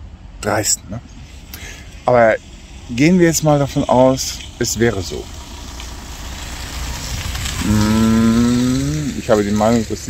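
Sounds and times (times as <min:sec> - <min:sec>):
car engine idling and revving: 0:00.0 - 0:10.0.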